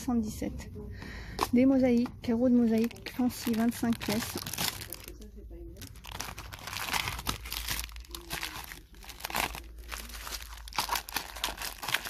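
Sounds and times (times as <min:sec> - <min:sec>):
plastic packaging crinkling: 0:02.6 - 0:12.0.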